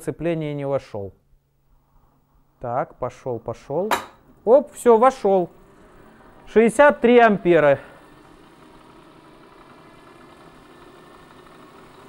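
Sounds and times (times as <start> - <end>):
electric starter motor humming: 5.2 - 12.0.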